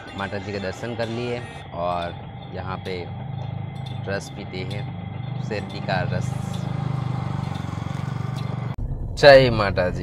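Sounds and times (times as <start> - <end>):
juice crusher motor pulsing drone: 0.0 - 8.8.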